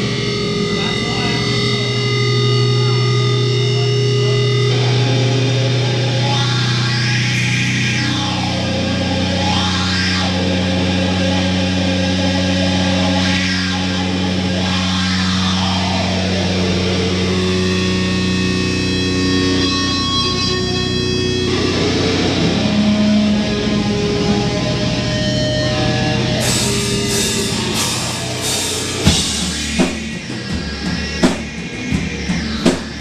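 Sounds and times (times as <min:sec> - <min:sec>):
distorted electric guitar droning: 0:00.0 - 0:33.0.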